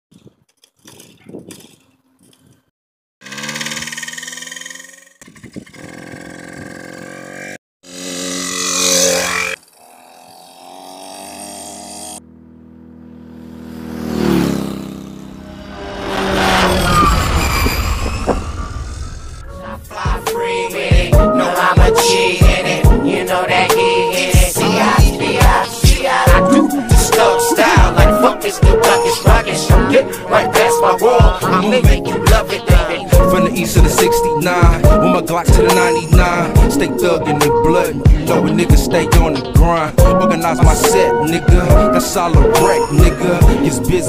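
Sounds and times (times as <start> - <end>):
dirt bike engine revving: 3.2 - 17.7
sweeping pitch sound: 12.2 - 20.6.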